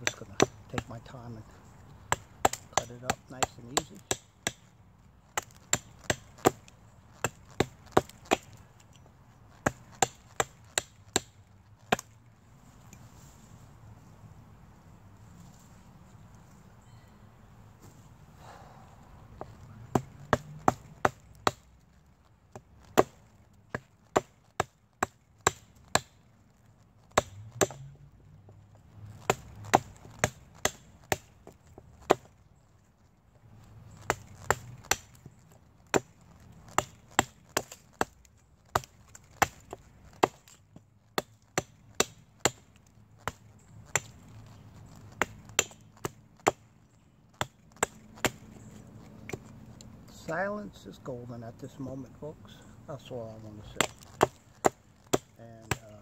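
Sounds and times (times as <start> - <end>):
hatchet chopping wood: 0.0 - 1.0, 2.0 - 4.7, 5.3 - 12.2, 19.4 - 21.7, 22.5 - 26.2, 27.1 - 32.4, 33.9 - 46.7, 47.3 - 49.5, 53.7 - 56.0.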